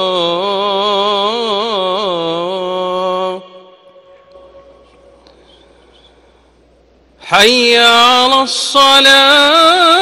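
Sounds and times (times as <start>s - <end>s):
echo: 0.0s - 10.0s.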